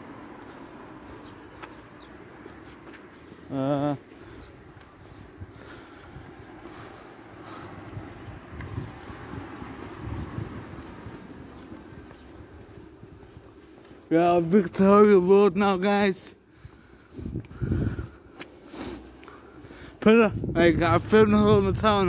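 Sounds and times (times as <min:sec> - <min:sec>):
footsteps on pavement: 0:00.0 - 0:22.0.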